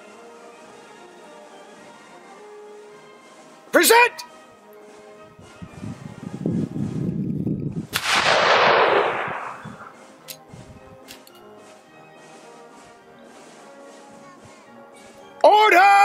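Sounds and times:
faint background music: 0:00.0 - 0:16.0
rifle shot: 0:07.9 - 0:10.0
rifle action clicks: 0:08.0 - 0:10.4, 0:11.0 - 0:11.5.

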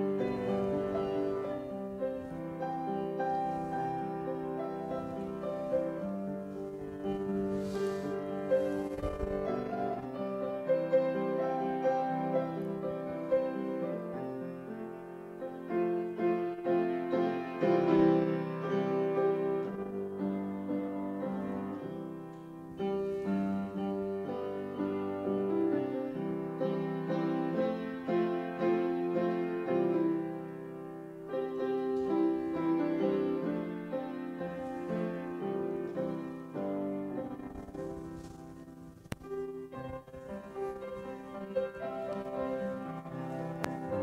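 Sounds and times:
grand piano playing: 0:00.0 - 0:44.0.

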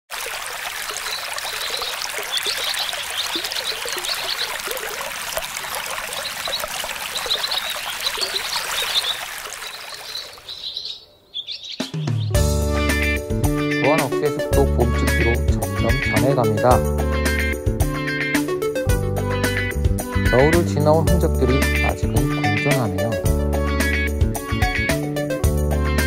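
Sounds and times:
stream water running: 0:00.0 - 0:13.1, 0:13.9 - 0:16.9
small birds chirping: 0:00.9 - 0:13.1.

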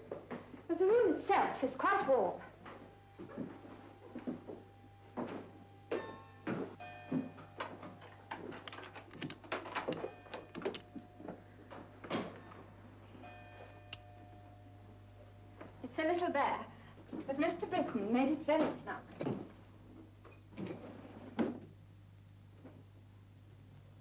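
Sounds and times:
steady low hum: 0:00.0 - 0:24.0
faint held tones: 0:01.8 - 0:15.9
footsteps on wooden stairs: 0:02.6 - 0:12.4.

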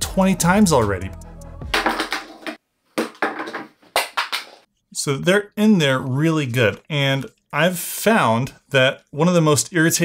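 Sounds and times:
plastic objects clattering on wooden desk: 0:01.8 - 0:04.6.

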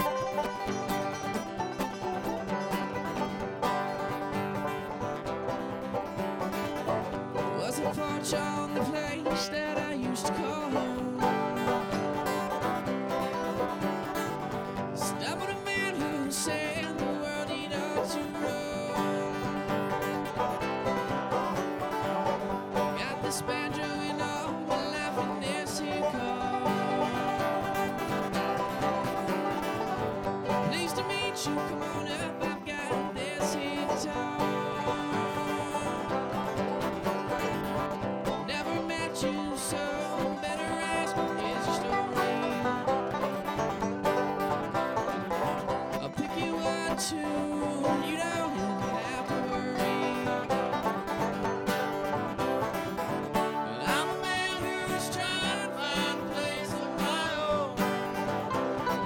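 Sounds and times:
banjo picked notes: 0:00.0 - 0:59.0
bluegrass trio playing: 0:00.0 - 0:59.0.

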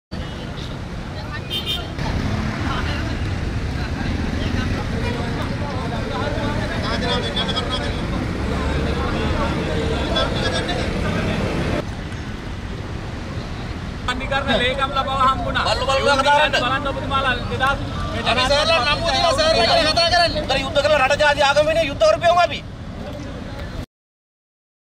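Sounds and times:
road traffic: 0:00.1 - 0:23.9
crowd talking indistinctly: 0:01.0 - 0:23.8.

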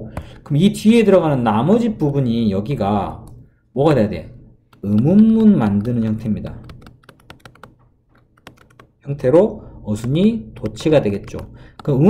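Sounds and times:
stylus tapping on tablet screen: 0:04.7 - 0:09.0, 0:09.9 - 0:12.0.

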